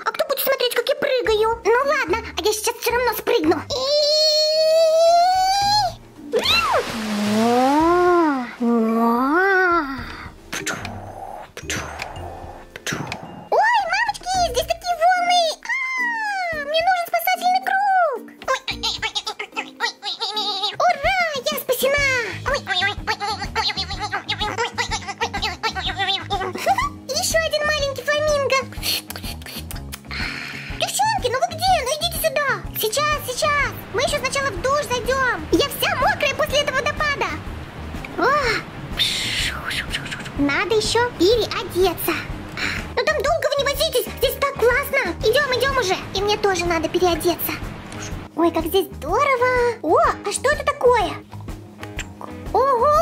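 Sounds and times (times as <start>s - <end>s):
background music: 0.0s - 53.0s
hissing noise: 5.7s - 13.4s, 33.2s - 43.0s
swooping whoop: 6.3s - 6.8s.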